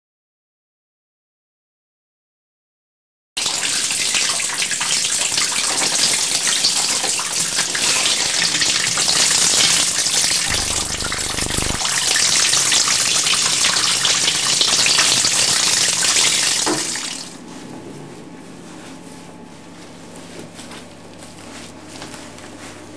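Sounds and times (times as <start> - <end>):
shower head spraying water: 10.5 - 11.8.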